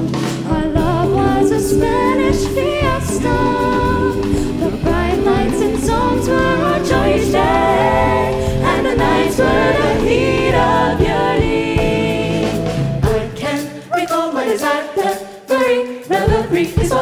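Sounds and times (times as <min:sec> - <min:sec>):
jazz band with bass and drums: 0:00.0 - 0:14.5
vocal ensemble singing in harmony: 0:00.0 - 0:17.0.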